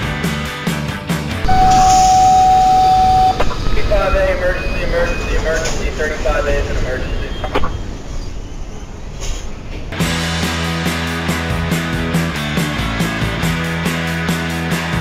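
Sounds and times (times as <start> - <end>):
high-pitched wheel squeal: 1.5 - 3.4.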